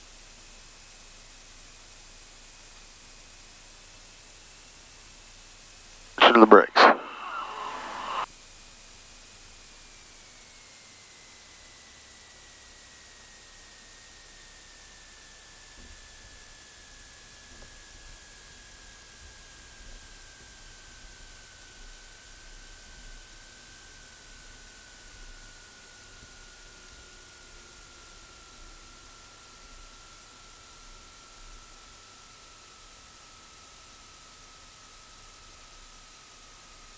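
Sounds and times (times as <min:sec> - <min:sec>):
cockpit noise hiss: 0:06.2 - 0:08.2
thin whine falling in pitch: 0:06.2 - 0:08.2.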